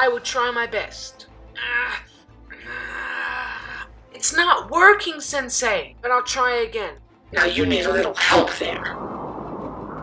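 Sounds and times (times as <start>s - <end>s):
background music: 0.0s - 9.9s.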